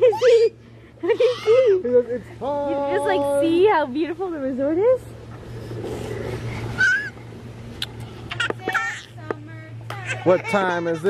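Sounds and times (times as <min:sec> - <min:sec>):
low hum: 0:00.0 - 0:10.2
baby squealing: 0:06.8 - 0:07.1.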